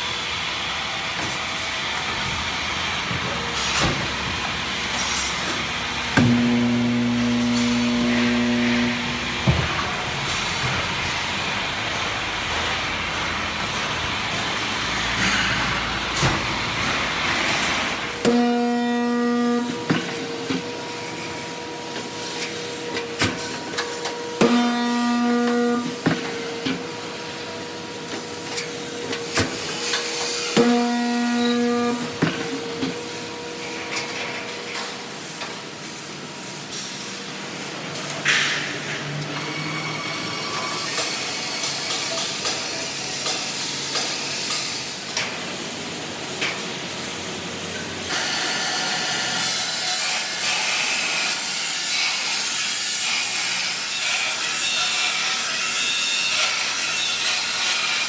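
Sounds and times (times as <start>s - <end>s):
welding machine electrical hum: 0.0s - 58.0s.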